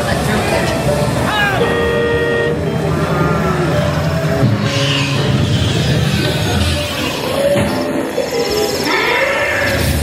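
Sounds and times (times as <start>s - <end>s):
music: 0.0s - 10.0s
held horn-like tone: 1.6s - 4.0s.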